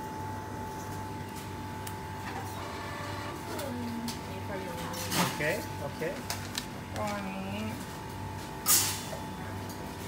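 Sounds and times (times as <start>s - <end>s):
machine hum with high whine: 0.0s - 10.0s.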